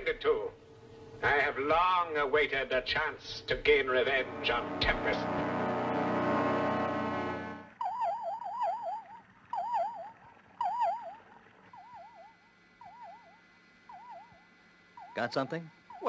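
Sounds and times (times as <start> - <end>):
held music chord: 4.0 - 7.8
electronic warbling signal tone: 4.1 - 16.0.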